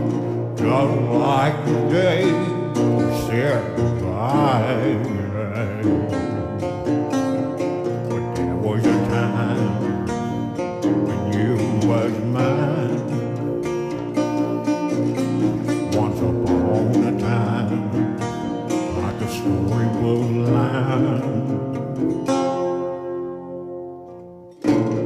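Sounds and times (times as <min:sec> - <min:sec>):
fingerpicked resonator guitar blues: 0:00.0 - 0:25.0.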